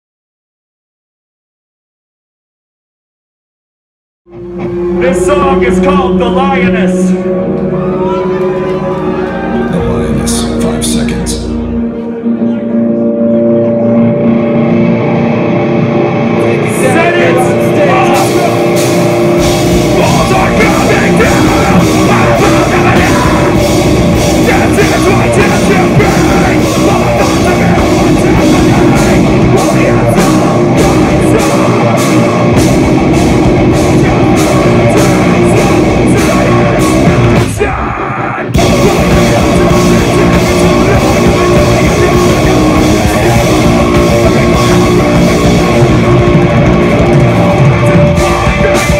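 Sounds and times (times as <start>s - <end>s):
drums and bass: 4.3s - 11.8s, 13.8s - 48.9s
electric guitar notes ringing: 4.3s - 37.6s, 38.5s - 48.9s
live metal band playing: 4.3s - 48.9s.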